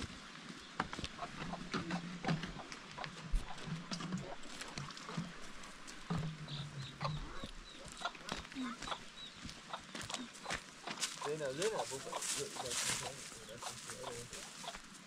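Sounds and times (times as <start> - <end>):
footsteps on dry dirt: 0.0 - 15.0
chickens chirping: 0.8 - 15.0.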